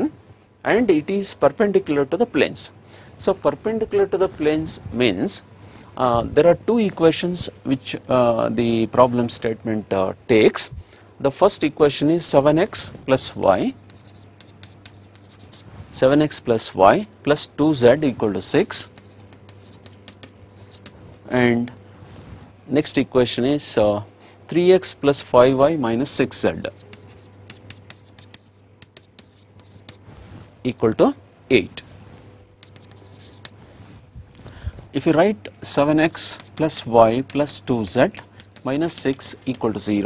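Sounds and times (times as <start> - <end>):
low steady hum: 0.0 - 40.0
chalk tapping: 13.6 - 15.7, 18.6 - 21.0, 26.2 - 30.1, 32.6 - 33.6, 35.7 - 39.9
chalk scratching on chalkboard: 13.6 - 16.4, 18.4 - 21.2, 26.0 - 30.5, 32.6 - 34.0, 35.6 - 40.0.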